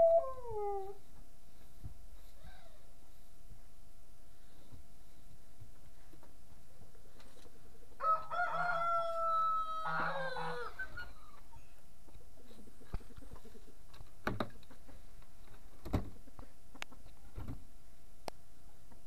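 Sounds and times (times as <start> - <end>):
rooster crowing: 8.0 - 10.8.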